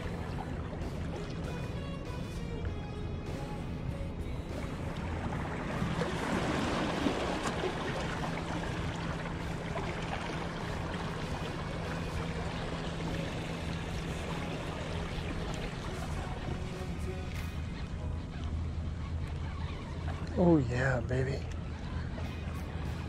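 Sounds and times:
background music: 0.0 - 20.7.

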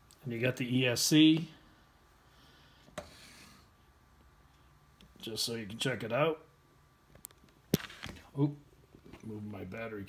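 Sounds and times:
faint rubbing: 2.9 - 3.8.

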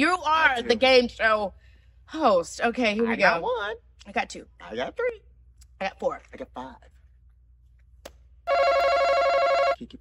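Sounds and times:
electronic game buzzer: 8.5 - 9.8.

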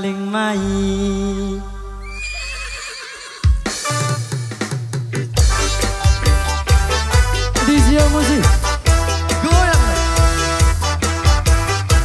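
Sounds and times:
keyboard chord and bass: 0.0 - 2.2, 5.4 - 12.0
drum beat: 3.4 - 12.0.

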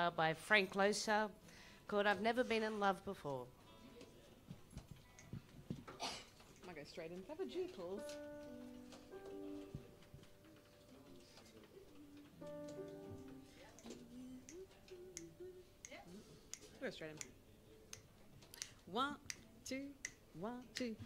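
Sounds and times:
faint voices: 6.7 - 21.0
soft sustained instrument chords: 8.0 - 11.2.

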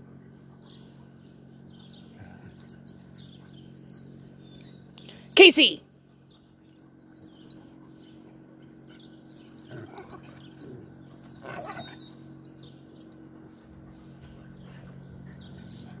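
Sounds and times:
steady low hum: 0.0 - 16.0
dogs play-wrestling: 1.9 - 4.8, 6.5 - 16.0
dog vocal sounds: 2.1 - 3.5, 8.7 - 12.2.

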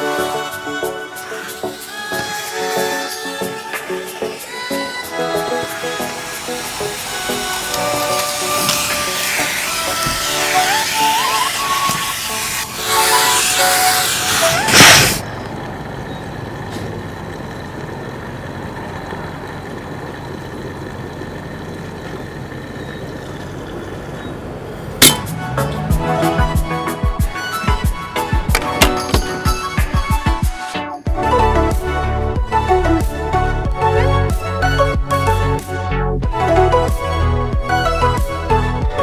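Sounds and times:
background music: 0.0 - 15.2, 25.0 - 39.0
vacuum cleaner suction hiss: 1.2 - 15.2.

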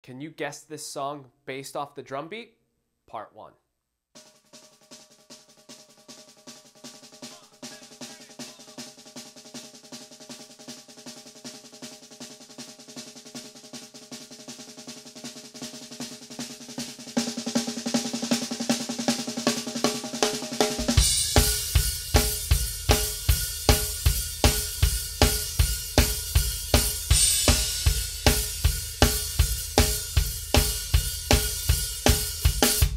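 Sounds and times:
full drum kit beat: 4.2 - 32.9
snare drum roll: 4.2 - 32.9.

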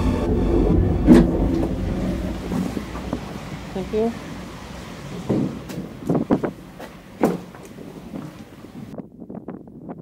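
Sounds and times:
cable car running gear rumble: 0.0 - 9.0
sharp clunk: 5.2 - 8.4.

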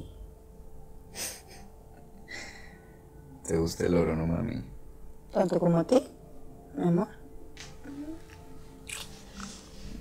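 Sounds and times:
breaths: 2.3 - 3.0.

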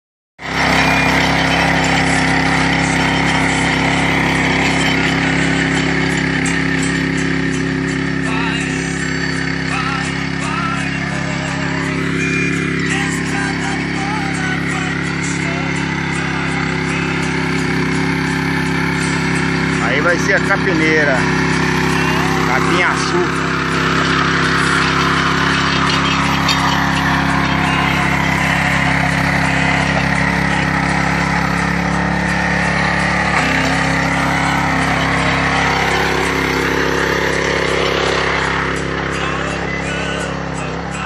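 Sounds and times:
rotary tiller engine running: 0.4 - 41.0.

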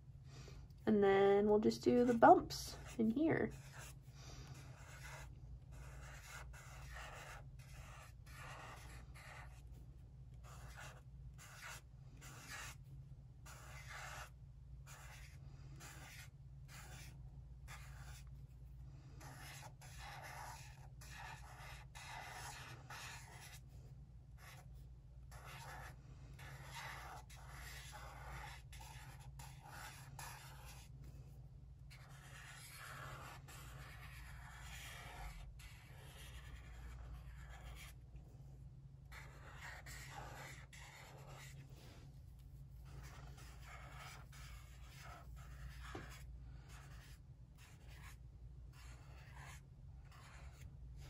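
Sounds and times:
low steady hum: 0.0 - 49.1
felt-tip marker scratching paper: 1.9 - 4.0, 4.6 - 9.8, 10.4 - 12.8, 13.4 - 18.3, 19.2 - 23.6, 24.4 - 24.7, 25.3 - 30.9, 31.9 - 38.0, 39.1 - 41.6, 42.7 - 50.7.

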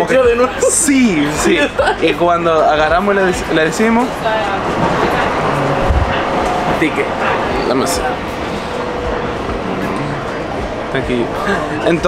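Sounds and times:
train carriage rumble and rattle: 0.2 - 12.0
low bump: 4.2 - 10.9.

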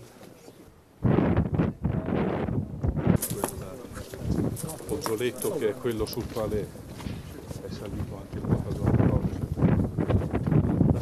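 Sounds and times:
wind buffeting microphone: 1.0 - 11.0.

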